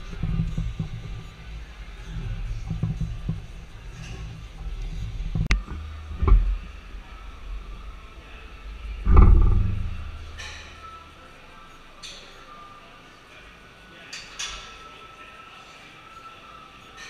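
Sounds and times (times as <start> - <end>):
heavy rumbling thump: 9.0 - 10.4.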